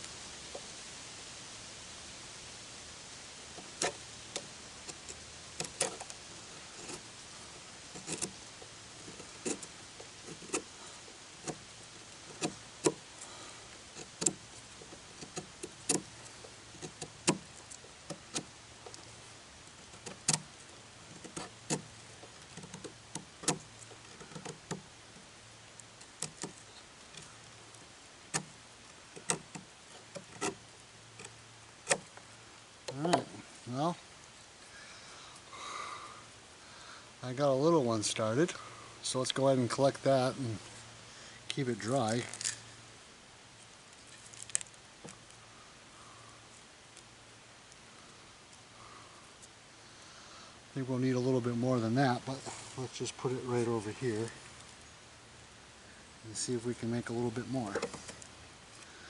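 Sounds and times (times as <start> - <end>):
knife blade scraping wood: 7.9 - 8.4, 9.0 - 10.7, 29.2 - 30.6.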